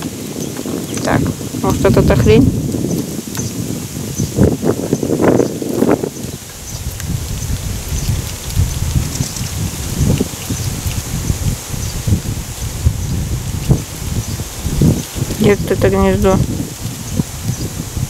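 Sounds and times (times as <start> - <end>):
leaves rustling: 0.0 - 18.0
wind buffeting microphone: 0.0 - 18.0.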